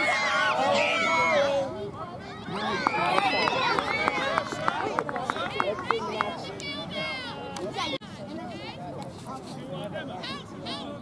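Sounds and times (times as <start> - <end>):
spectators calling and cheering: 0.0 - 8.7.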